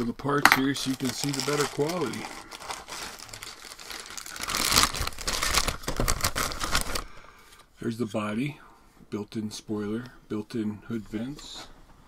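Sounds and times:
plastic bags crinkling and tearing: 0.6s - 7.2s.

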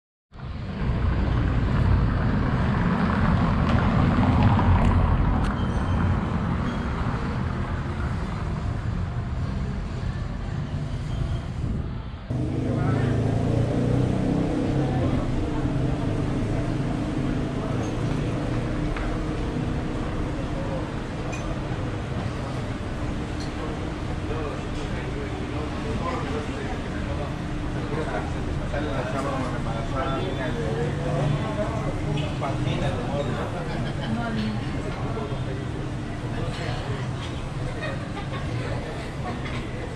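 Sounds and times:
passing cars: 0.4s - 39.9s
murmur of voices: 12.3s - 39.9s.

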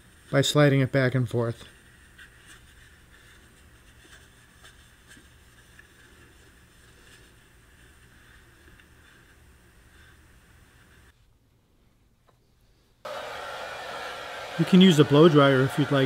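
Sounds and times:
low room hum: 0.0s - 16.0s
tissue rubbing and rustling: 1.4s - 11.4s.

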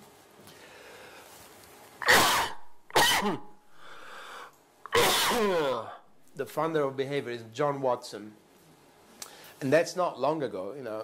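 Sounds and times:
faint breathy hiss: 0.4s - 6.5s, 9.1s - 9.8s
man coughing: 2.0s - 4.2s, 4.9s - 6.1s.

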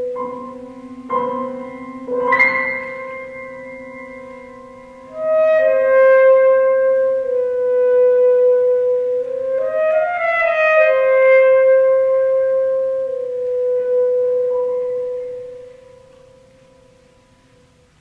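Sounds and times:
alto saxophone playing: 0.0s - 16.2s
low piano note: 0.0s - 18.0s.

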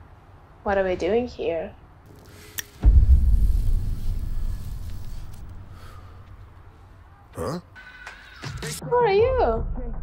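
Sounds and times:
deep cinematic boom: 2.8s - 4.5s.

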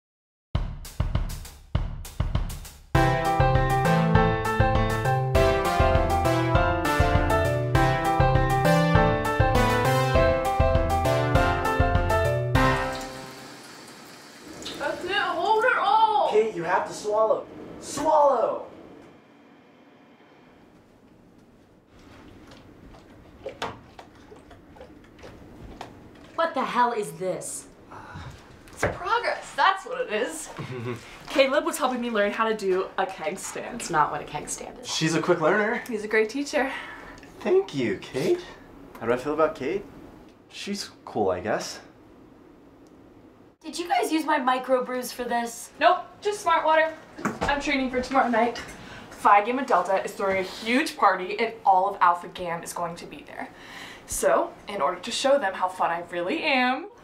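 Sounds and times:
drum kit hits: 0.6s - 13.3s
low room hum: 14.3s - 57.0s.

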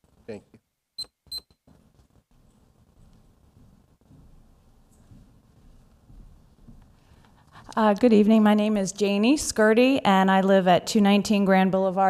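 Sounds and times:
short electronic beeps: 1.0s - 1.6s.

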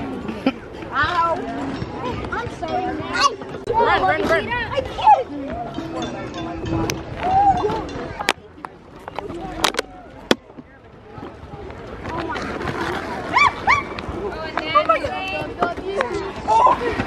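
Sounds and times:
children squealing: 13.2s - 14.0s.

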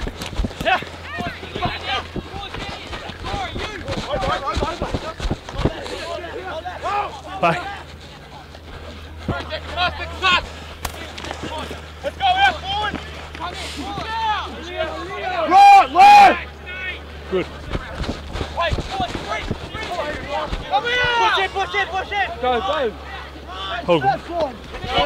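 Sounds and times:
players shouting: 0.4s - 25.0s.

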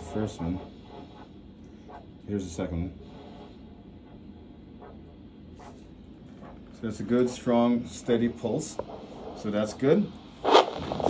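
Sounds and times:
man speaking: 0.0s - 0.7s
doppler pulse whoosh: 10.4s - 11.0s.

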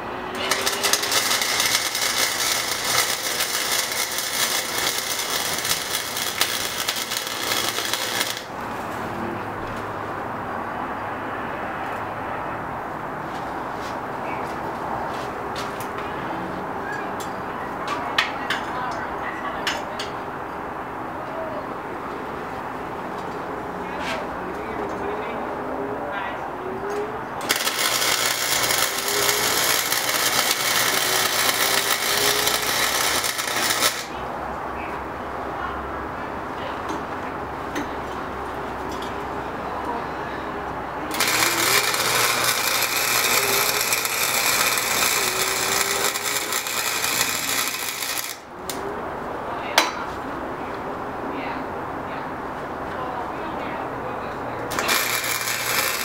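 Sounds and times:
welder arc crackling: 0.0s - 8.6s, 27.4s - 34.2s, 41.1s - 48.8s, 54.7s - 56.0s.

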